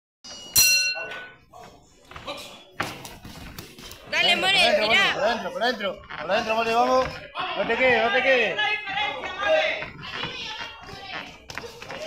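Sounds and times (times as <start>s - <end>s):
boxing ring bell ringing: 0.3s - 1.4s.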